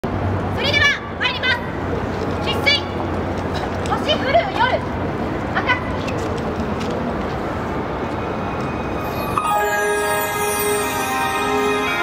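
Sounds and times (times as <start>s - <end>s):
outdoor crowd noise: 0.0s - 12.0s.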